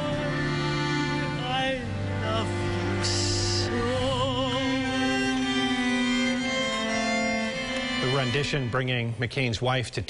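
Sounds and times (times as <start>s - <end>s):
bowed strings holding a chord: 0.0s - 9.5s.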